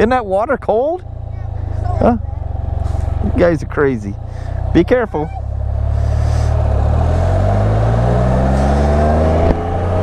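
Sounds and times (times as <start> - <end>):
engine idling low drone: 0.0 - 10.0.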